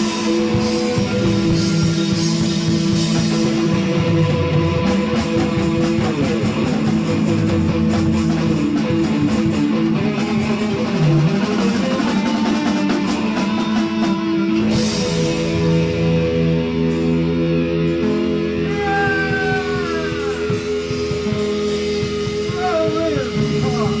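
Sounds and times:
drum kit: 0:00.0 - 0:24.0
electric bass: 0:00.0 - 0:24.0
electric guitar: 0:00.0 - 0:24.0.

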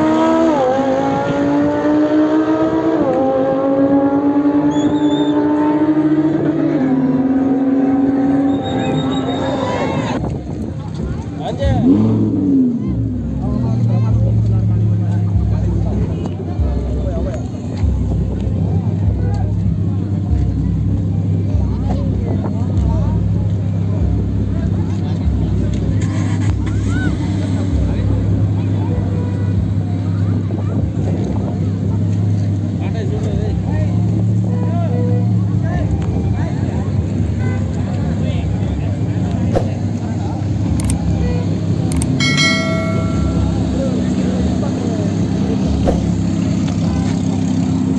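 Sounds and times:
car engine revving and idling: 0:09.9 - 0:42.2
people talking: 0:42.2 - 0:47.8.

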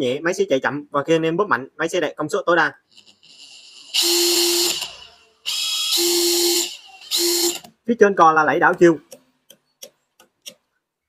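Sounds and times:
impact driver whine: 0:03.0 - 0:07.7.

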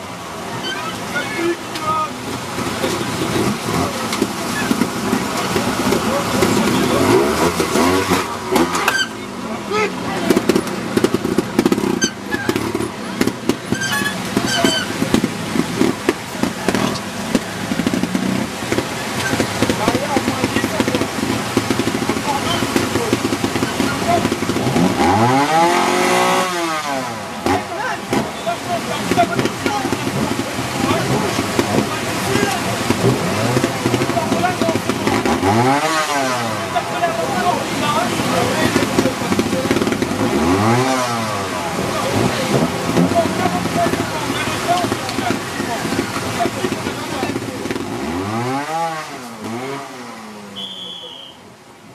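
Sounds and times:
voices: 0:00.0 - 0:50.0, 0:50.6 - 0:51.6
motorcycle engine revving: 0:00.0 - 0:50.9.

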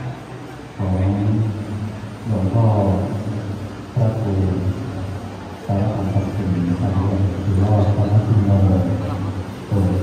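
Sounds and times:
man speaking in deep voice: 0:00.8 - 0:04.9, 0:05.6 - 0:10.0.

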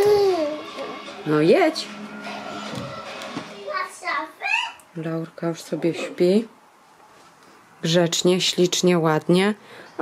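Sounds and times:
baby vocalising: 0:00.0 - 0:00.7.

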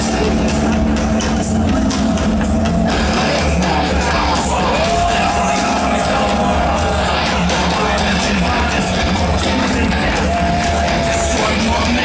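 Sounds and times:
loud heavy metal music: 0:00.0 - 0:12.0.

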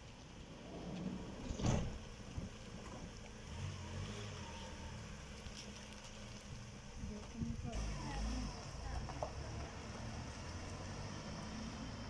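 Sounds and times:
van engine running quietly: 0:00.0 - 0:12.0.

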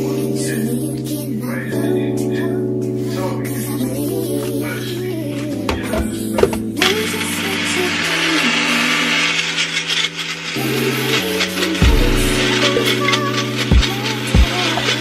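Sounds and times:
background music: 0:00.0 - 0:15.0
blender grinding in bursts: 0:06.5 - 0:15.0.

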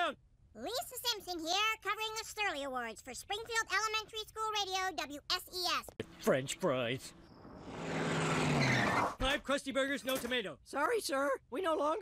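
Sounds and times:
cartoon car approaching fast: 0:07.3 - 0:09.2.

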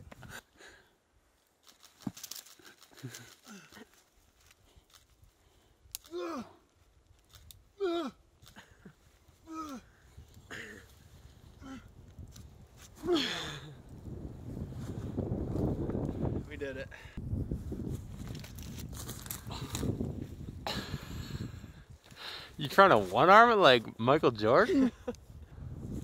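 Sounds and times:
man grunting with effort: 0:06.0 - 0:06.6, 0:07.8 - 0:08.2, 0:09.4 - 0:09.9, 0:13.0 - 0:13.8.

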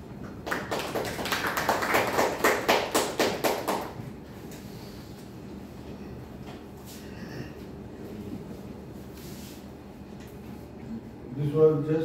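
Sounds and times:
people clapping: 0:00.0 - 0:04.1.

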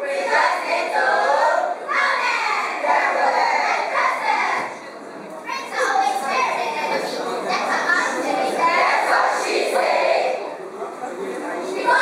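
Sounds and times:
students reciting in unison: 0:00.0 - 0:04.9, 0:08.0 - 0:10.5.

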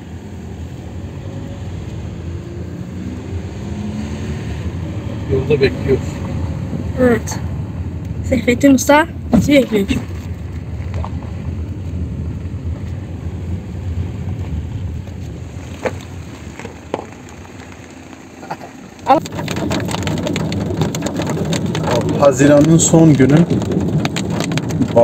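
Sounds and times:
car driving noise: 0:00.0 - 0:25.0
car engine idling: 0:04.9 - 0:25.0
raindrops tapping on windshield: 0:15.0 - 0:25.0.

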